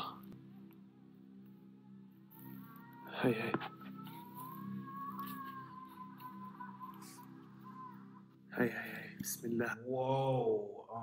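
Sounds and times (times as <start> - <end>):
low music drone: 0.0 - 11.0
distant high wail: 2.3 - 8.4.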